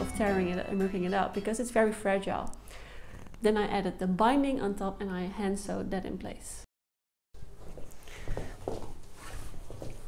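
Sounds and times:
footsteps on floor: 0:07.5 - 0:10.0.

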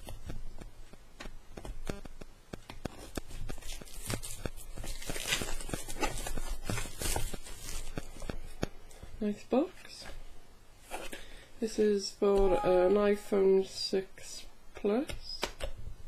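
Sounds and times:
cellophane crinkling and tearing: 0:02.9 - 0:08.6.

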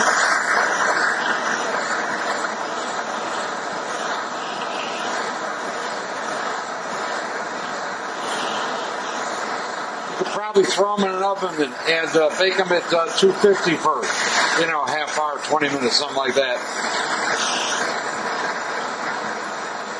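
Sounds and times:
gas torch flame hissing: 0:00.0 - 0:19.9.

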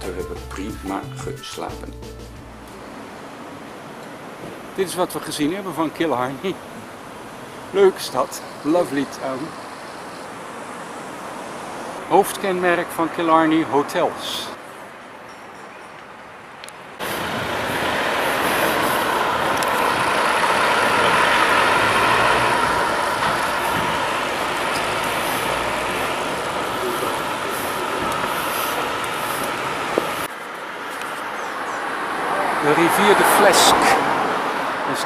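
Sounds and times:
minibus driving past: 0:17.0 - 0:35.0.

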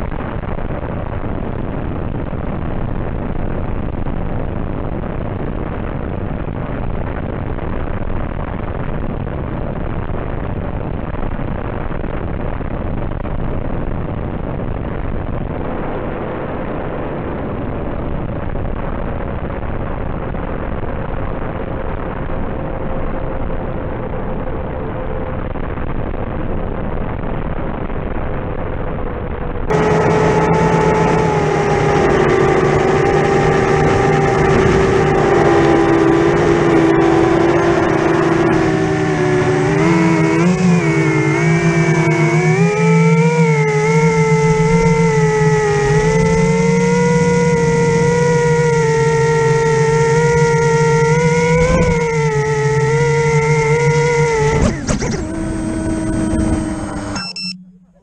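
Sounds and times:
model aircraft motor whine: 0:29.7 - 0:57.9.

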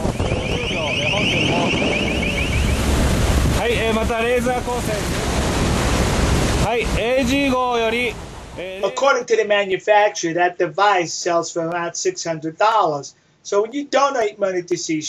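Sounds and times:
bursts of voices: 0:00.0 - 0:02.6, 0:03.6 - 0:05.4, 0:06.6 - 0:11.4
wind buffeting microphone: 0:00.0 - 0:08.6
sea rushing: 0:00.0 - 0:08.8.

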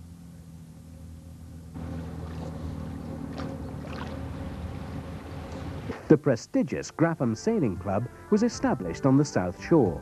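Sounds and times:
steady low hum: 0:00.0 - 0:10.0
water splashing and sloshing: 0:01.8 - 0:06.0.

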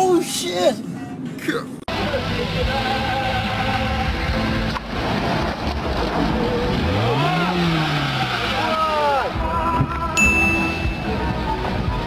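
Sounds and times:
people's voices: 0:00.0 - 0:04.4
car engine revving: 0:02.0 - 0:09.7.

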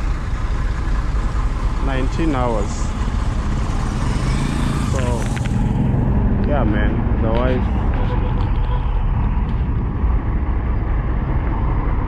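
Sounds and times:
diesel engine idling: 0:00.0 - 0:04.1.

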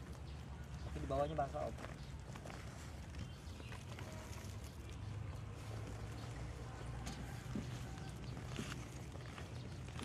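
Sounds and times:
soil and plastic bag rustling: 0:01.6 - 0:06.7.

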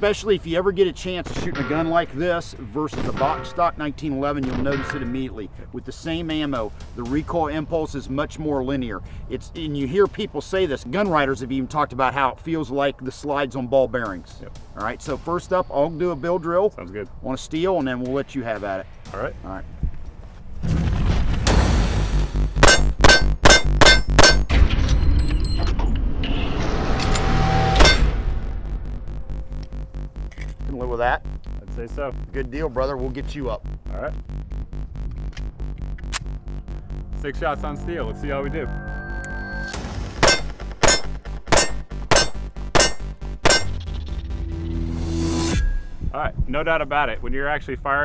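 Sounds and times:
bullets ringing off steel: 0:22.6 - 0:24.5, 0:40.2 - 0:43.8
background music: 0:37.0 - 0:46.2
pistol shots: 0:40.2 - 0:43.8.

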